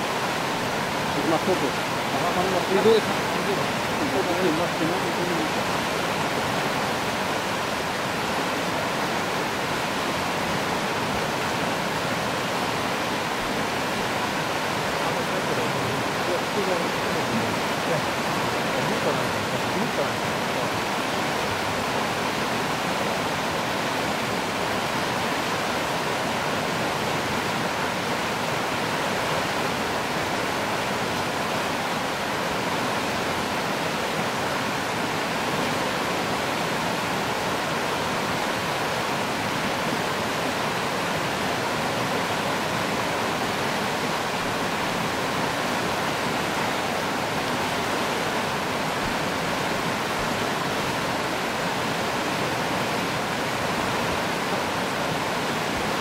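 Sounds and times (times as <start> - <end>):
river water rushing over rapids: 0.0 - 56.0.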